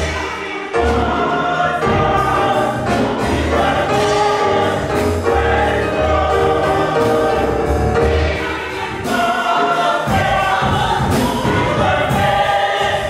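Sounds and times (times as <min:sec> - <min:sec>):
choir singing a hymn: 0:00.0 - 0:13.0
instrumental bass accompaniment: 0:00.8 - 0:09.1.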